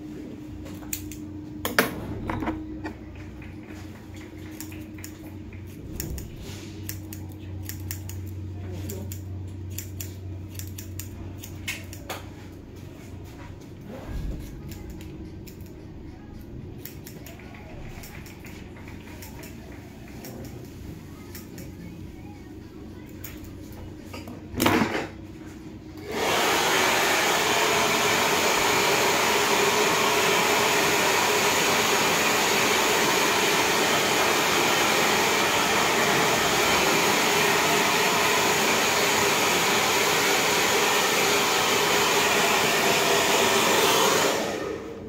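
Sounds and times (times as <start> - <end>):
hair dryer blowing: 26.0 - 45.0.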